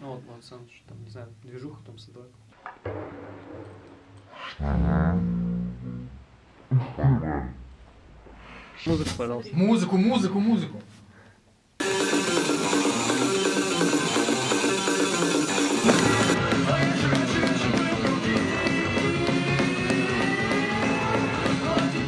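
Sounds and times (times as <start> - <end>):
punk rock music with guitar: 11.9 - 22.0.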